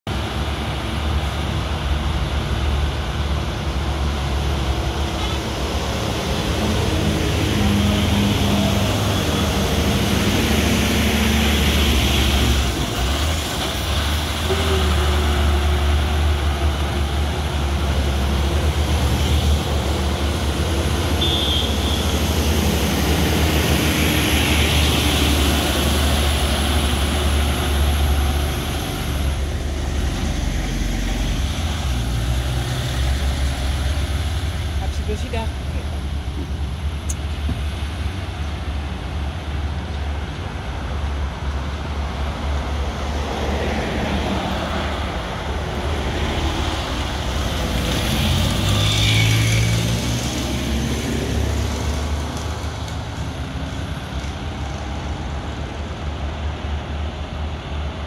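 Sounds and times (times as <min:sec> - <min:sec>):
heavy trucks passing: 0:00.1 - 0:58.0
steady low traffic rumble: 0:00.1 - 0:58.0
minivan passing: 0:00.2 - 0:58.0.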